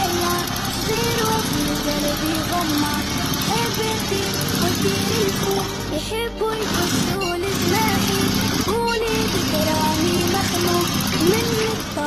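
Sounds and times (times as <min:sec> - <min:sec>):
music with held notes: 0:00.0 - 0:12.0
sewing machine running: 0:00.0 - 0:12.0.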